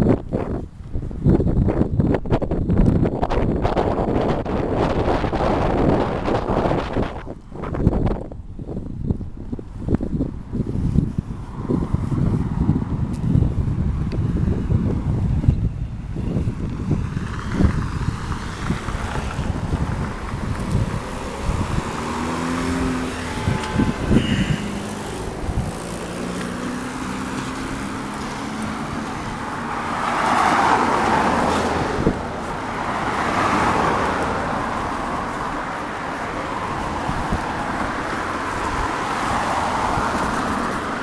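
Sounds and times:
cars driving past: 10.5s - 41.0s.

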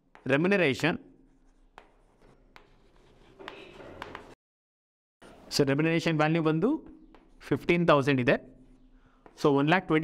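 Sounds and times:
chalk scratching on blackboard: 1.2s - 4.3s
chalk tapping on blackboard: 1.3s - 4.3s, 7.0s - 7.4s.

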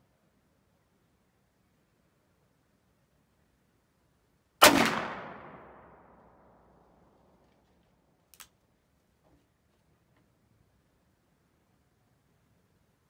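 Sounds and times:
revolver gunshot echoing: 4.6s - 6.1s
sharp click: 8.3s - 8.6s.

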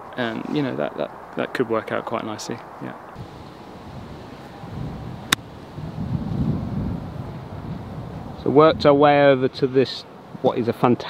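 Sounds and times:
wind buffeting microphone: 3.0s - 10.5s.

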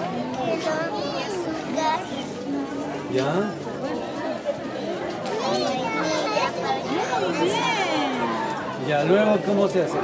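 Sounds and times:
overlapping chatter of voices: 0.0s - 10.0s
child's voice: 0.3s - 2.4s, 5.3s - 7.4s.

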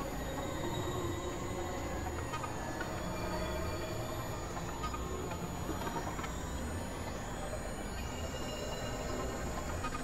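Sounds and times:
experimental electronic noise and drones: 0.0s - 10.0s.

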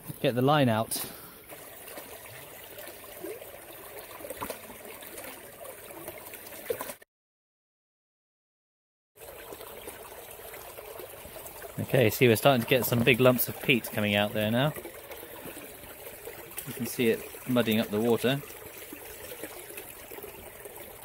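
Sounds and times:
water rushing out of a pipe: 0.8s - 7.0s, 9.2s - 21.0s.

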